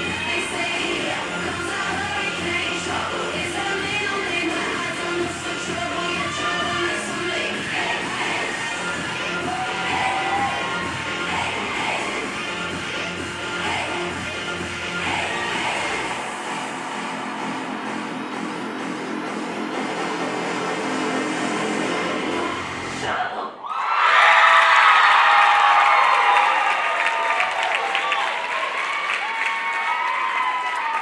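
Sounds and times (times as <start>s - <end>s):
pop dance music over speakers: 0.0s - 23.6s
audience cheering and screaming: 6.2s - 12.1s, 23.6s - 31.0s
applause: 24.1s - 31.0s.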